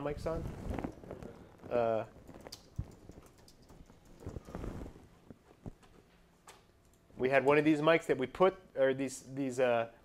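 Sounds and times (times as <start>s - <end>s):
keyboard keys clicking: 2.4s - 4.6s.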